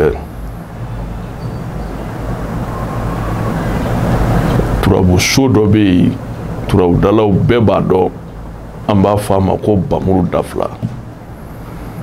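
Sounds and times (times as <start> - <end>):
man speaking: 0.0 - 0.3, 4.8 - 8.2, 8.9 - 10.9
steady low hum with hiss: 0.0 - 12.0.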